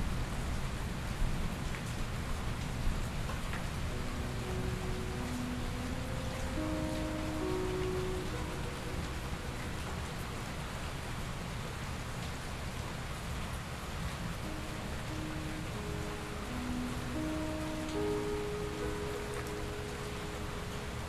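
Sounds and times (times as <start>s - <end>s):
steady rain falling: 0.0s - 21.0s
soft slow piano notes: 3.8s - 11.5s, 14.4s - 21.0s.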